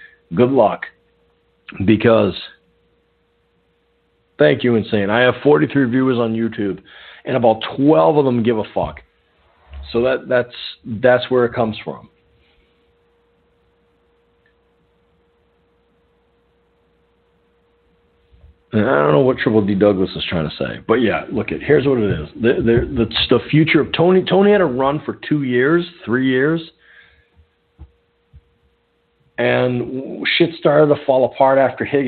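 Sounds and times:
faint steady tone: 0.0 - 22.6, 23.6 - 31.8
faint steady hum: 0.0 - 32.0
soft low thumps: 9.4 - 10.1, 21.5 - 24.1, 27.4 - 28.8.

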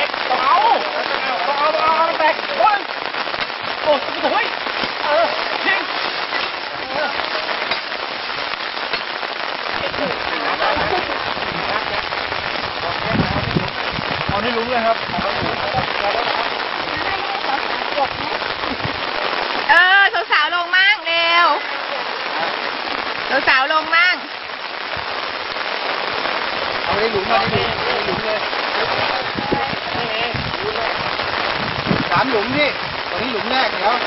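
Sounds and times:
faint voices: 0.0 - 8.6, 9.3 - 24.2, 26.0 - 34.0
steady noisy hiss: 0.0 - 34.0.

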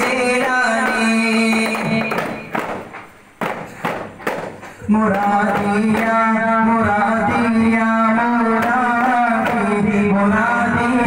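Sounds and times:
group singing: 0.0 - 2.5, 4.8 - 11.0
frame drum strikes: 0.0 - 6.3, 8.6 - 10.0.

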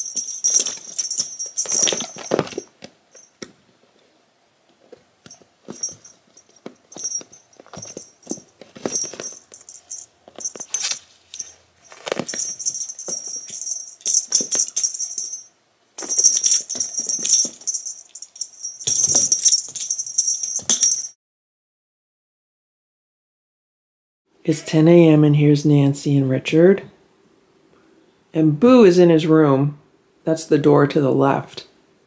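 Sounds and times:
cat toy jingling and rattling: 0.0 - 3.4, 5.3 - 21.2
scuffling on carpet: 6.9 - 13.8.

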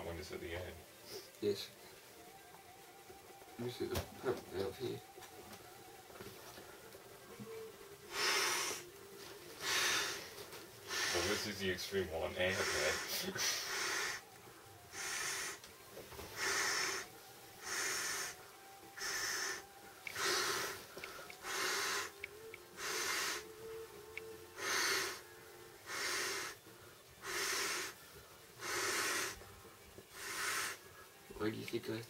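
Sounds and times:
person blowing into air bed valve: 8.1 - 8.9, 9.6 - 11.4, 12.5 - 14.3, 14.9 - 15.6, 16.4 - 23.8, 24.6 - 26.6, 27.2 - 28.0, 28.6 - 29.5, 30.1 - 30.9.

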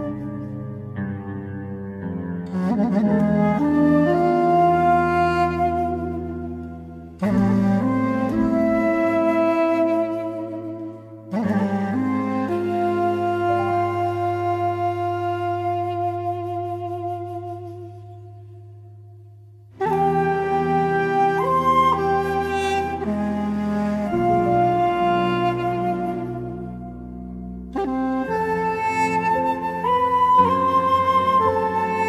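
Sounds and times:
flute playing slow melody: 0.0 - 32.0
woodwind long note: 0.0 - 32.0.

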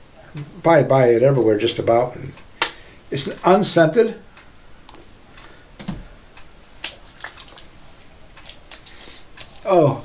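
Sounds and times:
liquid splashing into hands: 6.8 - 7.7.

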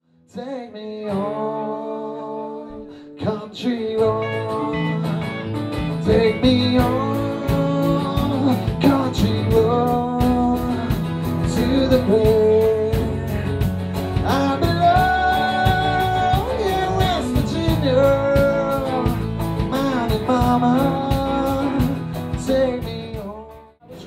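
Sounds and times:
electric guitars: 0.8 - 24.0
bending lead guitar melody: 1.1 - 24.0
bass guitar: 3.3 - 24.0
drums on a steady beat: 5.8 - 24.0.

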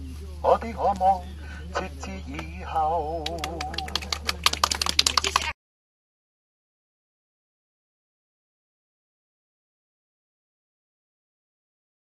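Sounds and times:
steady low hum: 0.0 - 5.5.

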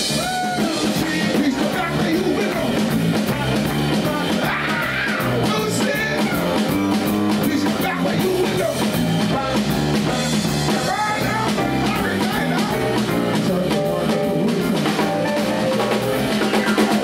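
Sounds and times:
drum kit: 0.0 - 17.0
electric bass: 0.0 - 17.0
live rock band playing: 0.0 - 17.0
male singer: 0.1 - 9.0, 10.7 - 17.0.

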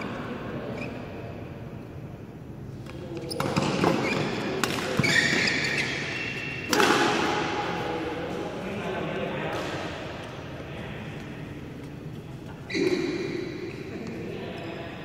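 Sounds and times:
racket hitting shuttlecock: 3.4 - 7.9.

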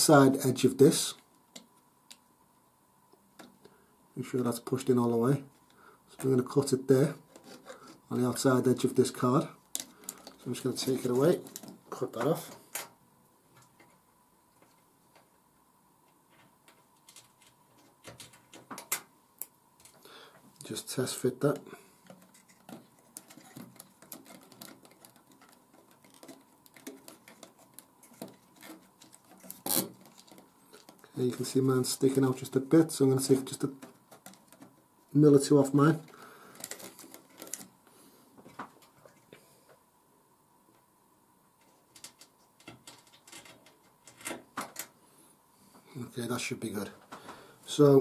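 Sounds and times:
faint clicks and scrapes of handling: 7.1 - 8.5, 9.2 - 15.3, 16.1 - 34.8, 35.7 - 39.9, 41.6 - 45.0.

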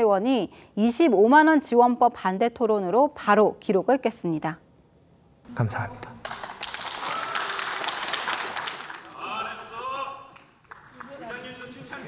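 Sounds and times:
crowd applause: 6.2 - 12.0.

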